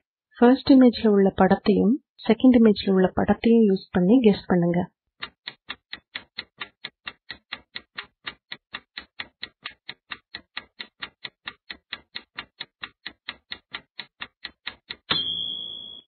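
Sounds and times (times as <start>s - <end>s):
clock ticking: 5.2s - 16.0s.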